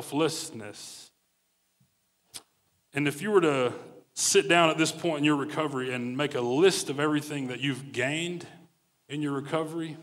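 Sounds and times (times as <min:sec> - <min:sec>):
man talking: 0:00.0 - 0:01.2, 0:02.9 - 0:10.0.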